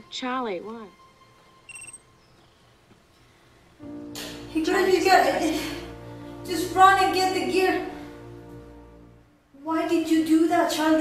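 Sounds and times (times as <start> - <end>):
short high electronic beep: 1.7 - 2.0.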